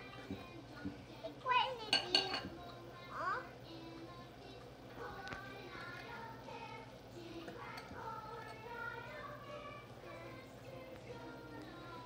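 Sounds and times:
fork clinking on glass: 0:01.9 - 0:02.5.

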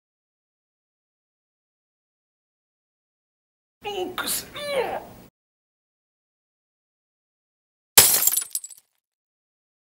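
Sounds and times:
glass pieces clattering: 0:08.0 - 0:08.8
jar smashing: 0:08.0 - 0:08.8.

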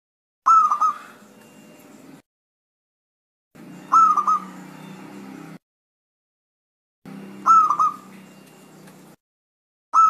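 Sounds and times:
dove cooing: 0:00.5 - 0:01.3, 0:03.8 - 0:04.9, 0:07.4 - 0:08.5.

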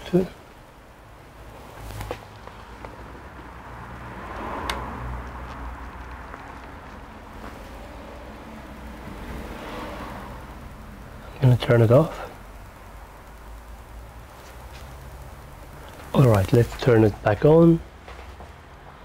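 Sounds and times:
low mains hum: 0:00.0 - 0:04.1, 0:05.7 - 0:19.0.

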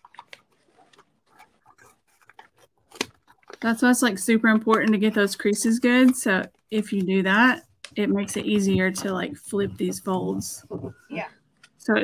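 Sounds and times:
paper crinkling: 0:00.0 - 0:11.8.

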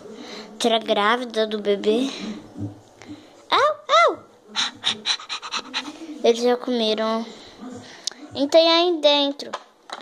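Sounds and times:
child panting with mouth: 0:04.6 - 0:06.1.

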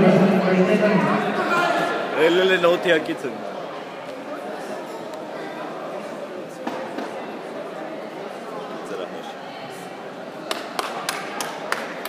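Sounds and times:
murmur of voices: 0:00.0 - 0:12.0
sharp hand claps: 0:10.5 - 0:12.0.

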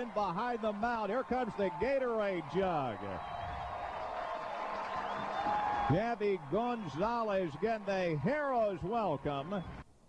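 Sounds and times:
crowd cheering: 0:00.0 - 0:09.8.

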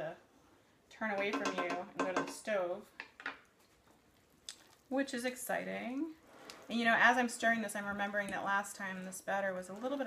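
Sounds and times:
soft batter mixing: 0:00.0 - 0:10.0.

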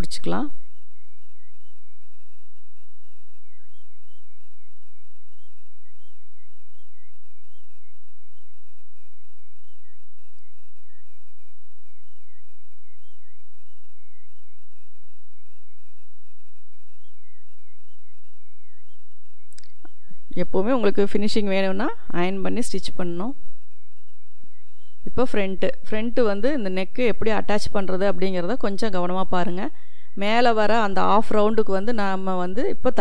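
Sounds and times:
high wavering whistle-like tone: 0:00.0 - 0:21.0, 0:22.4 - 0:25.3.

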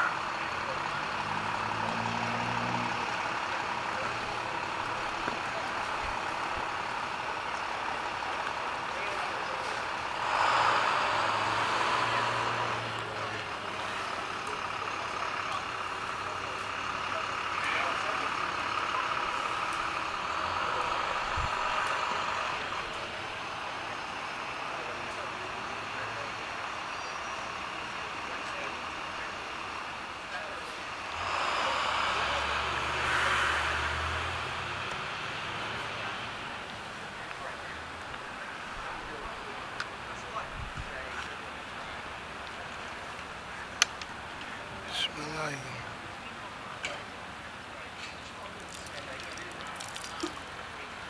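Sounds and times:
vehicle passing: 0:00.0 - 0:23.8, 0:29.0 - 0:38.0, 0:44.6 - 0:46.0
road traffic hum: 0:00.0 - 0:51.0.

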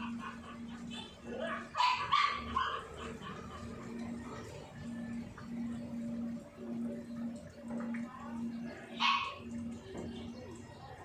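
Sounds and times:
steady low hum: 0:00.0 - 0:10.8
dog barking: 0:01.3 - 0:02.9, 0:09.0 - 0:09.5.

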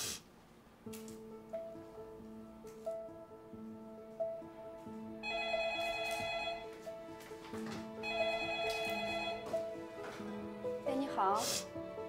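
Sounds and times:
soft background music: 0:00.6 - 0:12.0
telephone ringing: 0:05.2 - 0:06.8, 0:08.0 - 0:09.6.

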